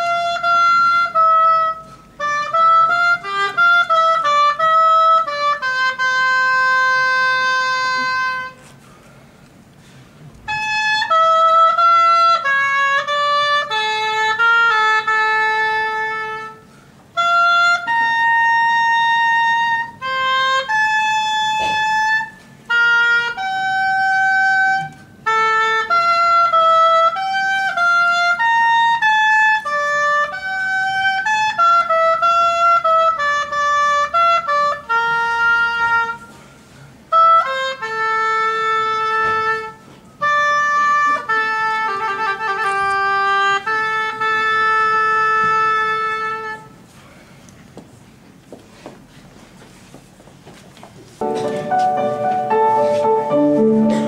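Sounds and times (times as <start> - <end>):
oboe playing slow melody: 0.0 - 8.8, 10.4 - 36.4, 37.0 - 46.9, 51.2 - 54.0.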